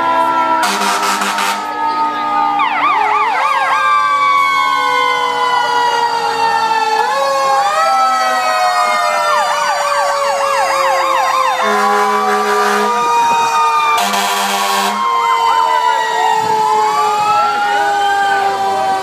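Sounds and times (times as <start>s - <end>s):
wailing fire truck siren: 0.0s - 19.0s
fire truck horn blasts: 0.2s - 2.0s, 11.6s - 15.2s
fast yelping siren: 0.3s - 19.0s.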